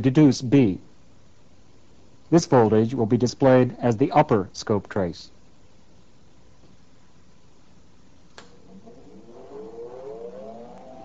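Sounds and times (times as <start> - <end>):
electrical whine rising in pitch: 8.4 - 11.0.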